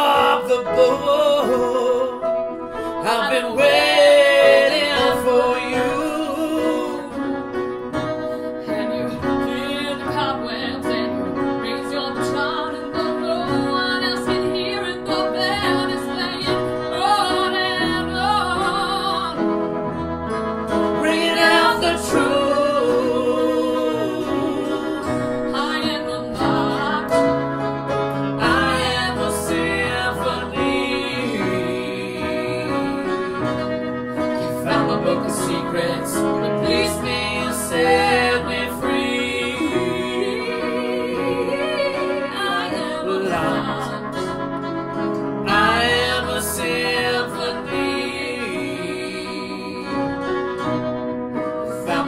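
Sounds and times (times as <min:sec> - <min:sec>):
upright piano: 0:00.0 - 0:52.0.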